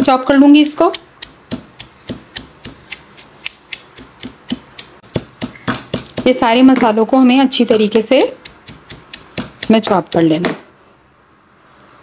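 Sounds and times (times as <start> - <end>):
food chopper clicking and knocking: 1.0 - 6.4, 7.7 - 9.8.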